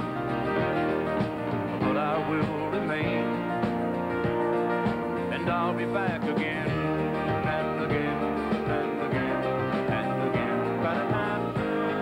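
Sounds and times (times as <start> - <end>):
country band with acoustic guitar: 0.0 - 12.0.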